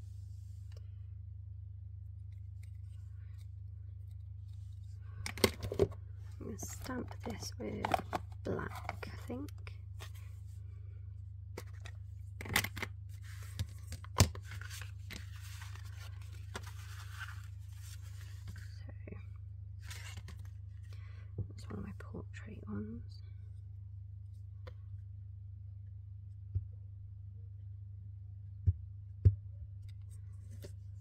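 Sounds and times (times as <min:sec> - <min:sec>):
steady low hum: 0:00.0 - 0:31.0
paper shuffling and rustling: 0:11.6 - 0:18.8, 0:19.8 - 0:20.6.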